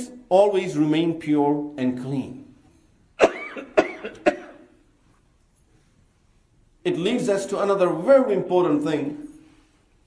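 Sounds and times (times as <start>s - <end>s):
man coughing: 3.2s - 4.8s.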